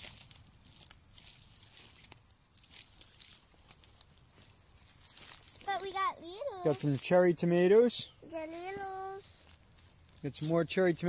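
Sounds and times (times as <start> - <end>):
light footsteps: 0.0 - 7.3
garden plants rustling: 0.0 - 11.0.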